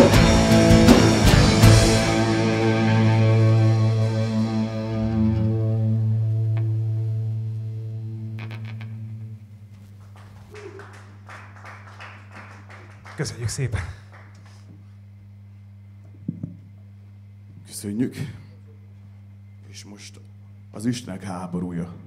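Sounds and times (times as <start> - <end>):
distorted guitar chord ringing: 0.0 - 9.7
low amplifier hum: 0.0 - 22.0.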